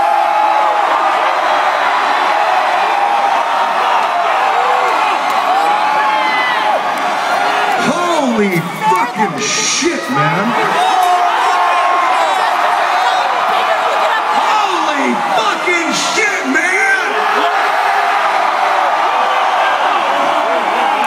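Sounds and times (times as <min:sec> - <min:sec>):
crowd cheering and whooping: 0:00.0 - 0:21.0.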